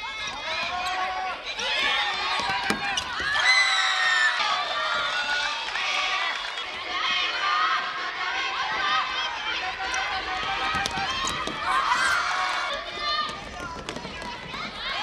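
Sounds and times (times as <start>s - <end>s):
girls shouting: 8.6s - 13.6s.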